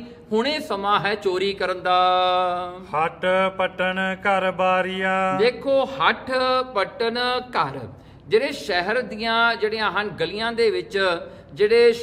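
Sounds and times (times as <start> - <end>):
man chanting devotional verse: 0.0 - 12.0.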